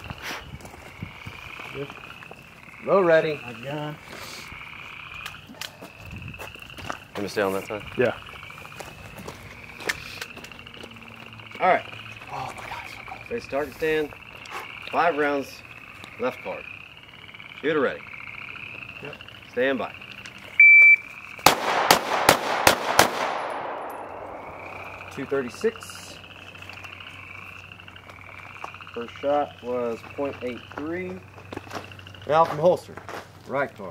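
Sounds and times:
frogs calling: 0.0 - 33.9.

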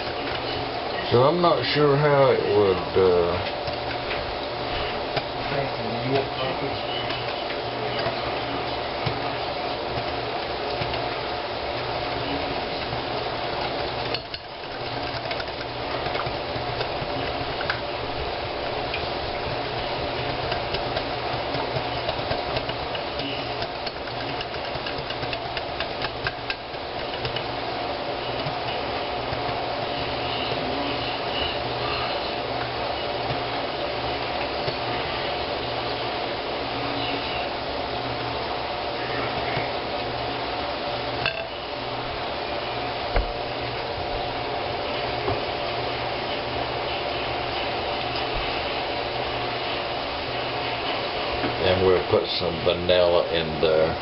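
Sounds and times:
steady hum: 0.0 - 54.0
whisk clinking against glass bowl: 14.0 - 17.7.

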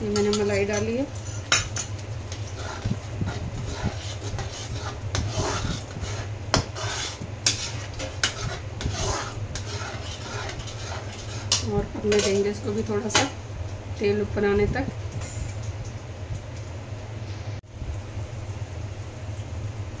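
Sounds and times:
steady low hum: 0.0 - 20.0
metal spatula scraping a pan: 0.1 - 12.6.

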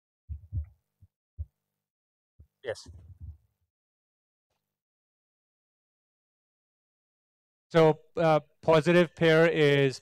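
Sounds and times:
microphone handling thumps: 0.3 - 0.8, 2.8 - 3.5.

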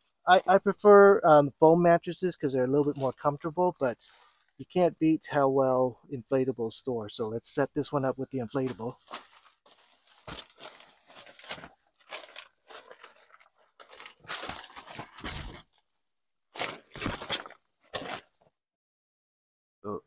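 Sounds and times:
air mattress rustling and crinkling: 9.0 - 15.8.

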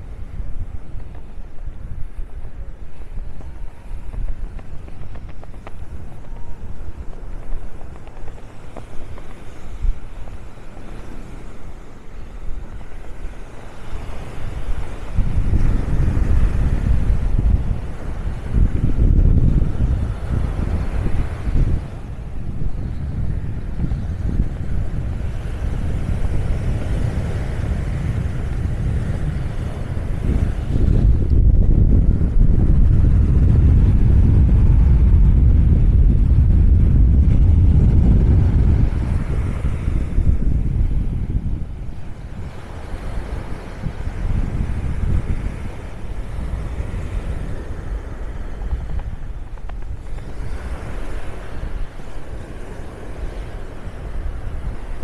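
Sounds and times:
breaking surf: 0.0 - 55.0
wind buffeting microphone: 0.0 - 55.0.

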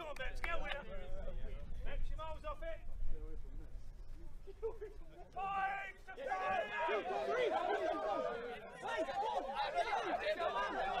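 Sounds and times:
men chattering and laughing: 4.4 - 5.4, 6.2 - 11.0.

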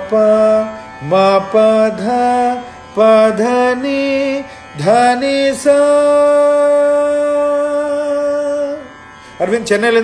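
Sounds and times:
man singing rising notes: 0.0 - 10.0.

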